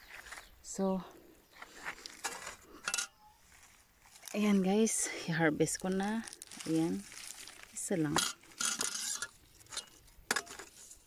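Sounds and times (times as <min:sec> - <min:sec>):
rustling of onion leaves and soil: 0:00.0 - 0:11.0.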